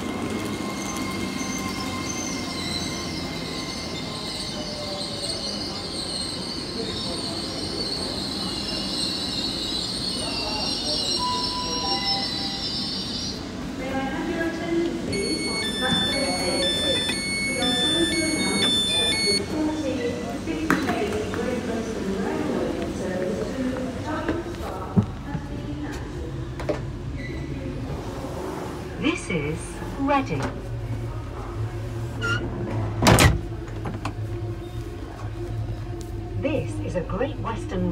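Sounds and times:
train hum: 0.0s - 37.9s
platform chatter: 4.1s - 26.9s
electronic two-tone warning signal: 15.1s - 19.4s
train door clunk: 32.2s - 34.2s.

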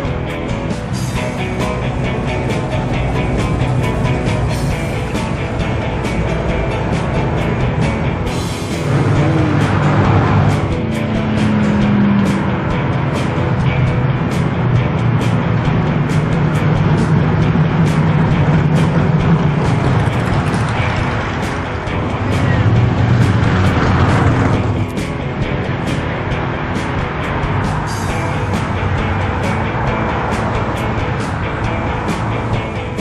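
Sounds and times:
cars driving past: 0.0s - 33.0s
music: 0.0s - 33.0s.

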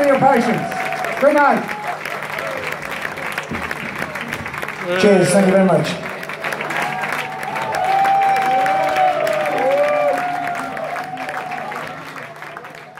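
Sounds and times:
audience applauding and cheering: 0.0s - 12.9s.

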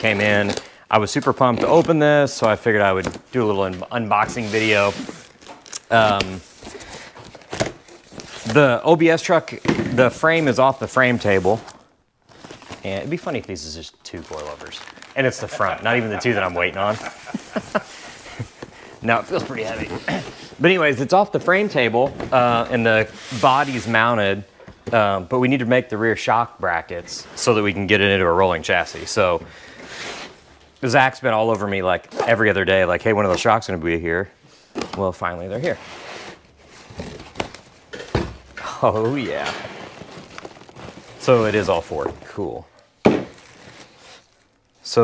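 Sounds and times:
packaging scraping and rustling: 4.1s - 21.8s, 38.8s - 42.6s, 43.3s - 45.0s
box contents being handled: 9.4s - 23.9s, 34.8s - 44.5s.

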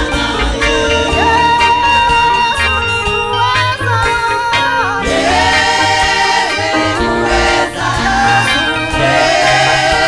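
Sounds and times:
group singing gospel song: 0.0s - 10.0s
instrumental backing with bass: 0.0s - 10.0s.

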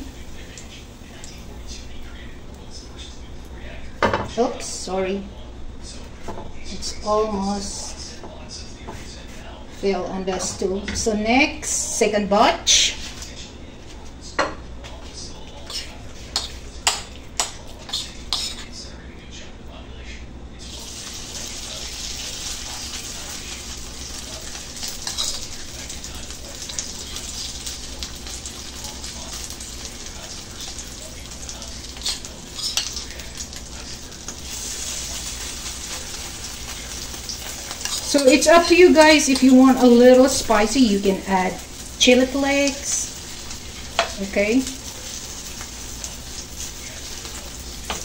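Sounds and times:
hot oil sizzling in frying pan: 20.6s - 48.0s.

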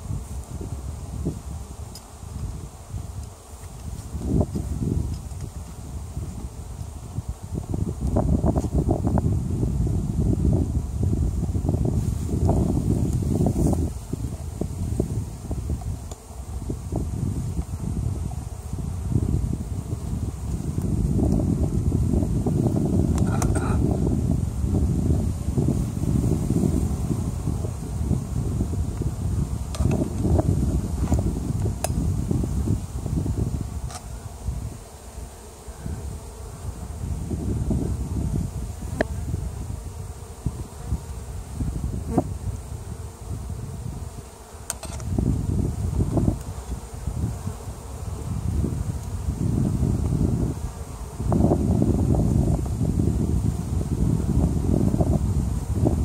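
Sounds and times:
bees buzzing: 0.0s - 56.0s
clicks of wooden hive frames: 3.2s - 5.8s, 15.8s - 16.3s, 23.1s - 23.8s, 29.7s - 30.4s, 31.0s - 32.0s, 33.8s - 34.2s, 44.4s - 45.1s.

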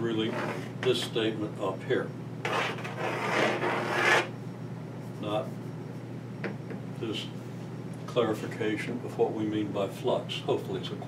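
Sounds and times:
chalk scraping on chalkboard: 0.3s - 0.7s, 2.4s - 4.3s.

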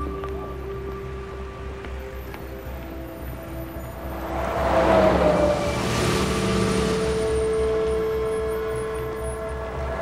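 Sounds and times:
music with sustained notes: 0.0s - 10.0s
road traffic whooshing past: 3.4s - 10.0s.

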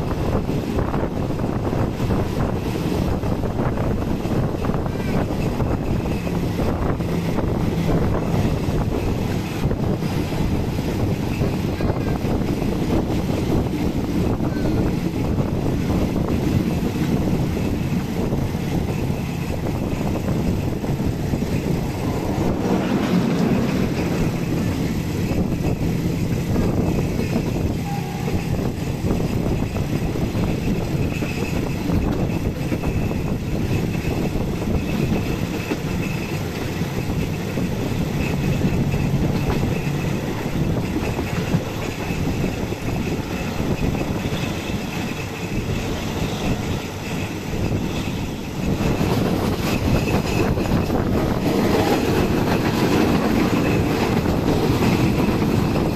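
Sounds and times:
train wheels rumbling on rails: 0.0s - 55.9s.

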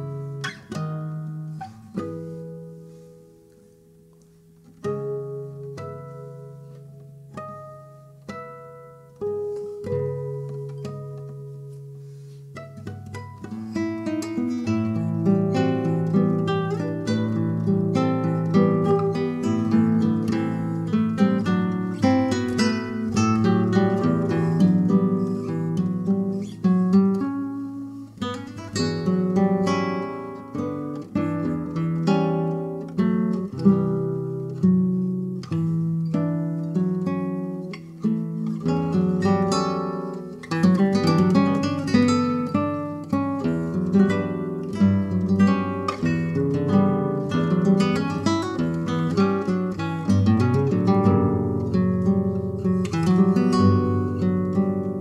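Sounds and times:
classical guitar duet: 0.0s - 55.0s.

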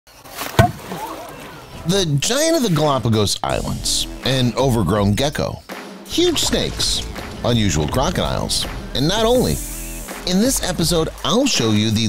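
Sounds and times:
water sloshing and splashing: 0.1s - 1.8s
crocodile jaws snapping shut: 0.5s - 1.0s.

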